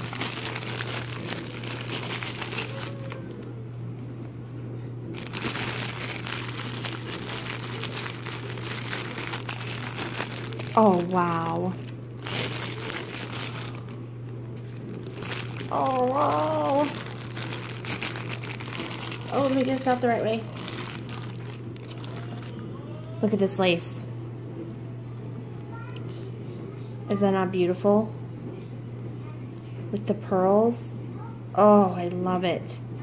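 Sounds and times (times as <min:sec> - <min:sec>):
plastic packaging crinkling: 0:00.0 - 0:03.5, 0:05.1 - 0:22.6
steady low hum: 0:00.0 - 0:33.0.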